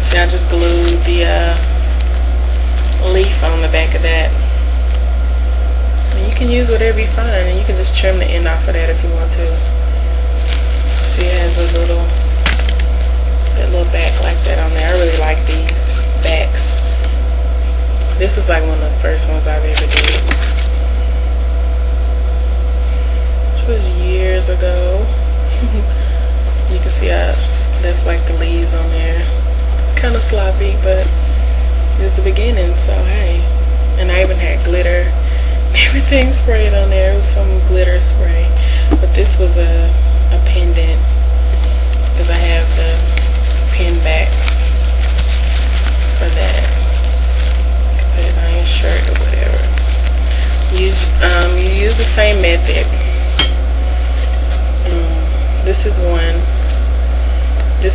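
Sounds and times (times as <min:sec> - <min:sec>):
fabric crackling and rustling: 0:00.0 - 0:03.3, 0:09.5 - 0:18.0, 0:19.7 - 0:20.9, 0:41.4 - 0:54.8
low electrical hum: 0:00.0 - 0:57.9.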